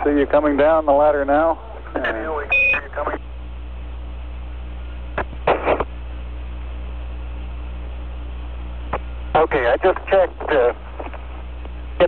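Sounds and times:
radio channel hiss and hum: 0.0s - 12.0s
short high beep: 2.5s - 2.8s.

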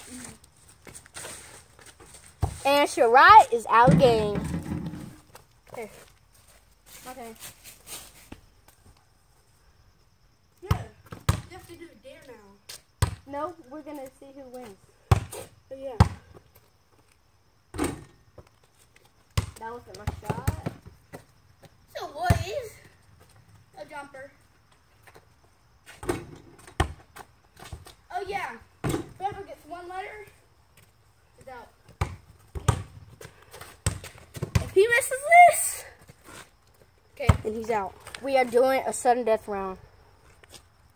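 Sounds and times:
basketball bouncing: 10.7s - 11.6s, 19.4s - 20.8s, 31.9s - 33.0s, 33.8s - 34.8s.

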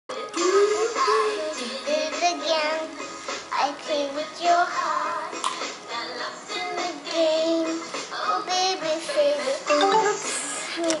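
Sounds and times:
karaoke backing track: 0.1s - 11.0s
child singing: 0.3s - 10.1s.

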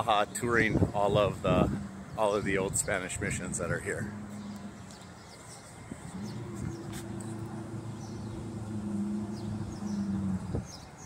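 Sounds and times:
low engine hum: 0.5s - 11.0s.

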